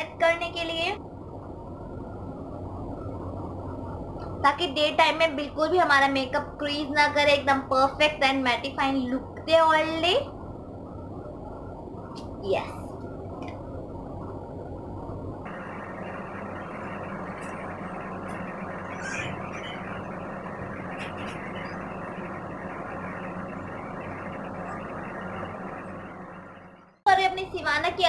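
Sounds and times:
steady background hiss: 0.0 - 28.0.

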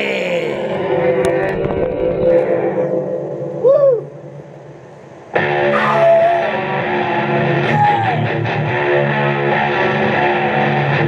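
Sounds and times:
vocal-like moan: 0.0 - 0.9.

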